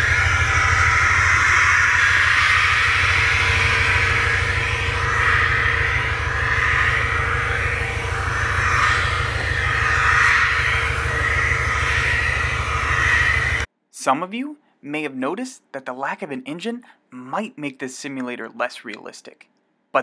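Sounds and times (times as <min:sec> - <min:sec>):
low rumble: 0:00.0 - 0:13.7
hum and hiss: 0:00.0 - 0:15.5.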